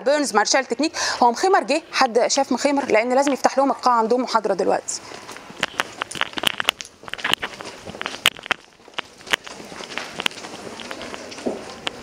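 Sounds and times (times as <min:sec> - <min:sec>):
steady room noise: 0:00.0 - 0:12.0
sharp irregular clicks and knocks: 0:05.2 - 0:12.0.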